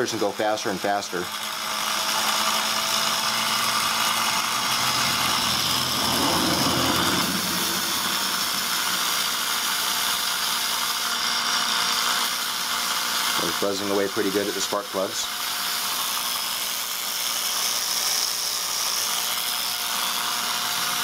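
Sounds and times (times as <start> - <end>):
spark plugs buzzing: 1.4 - 19.8.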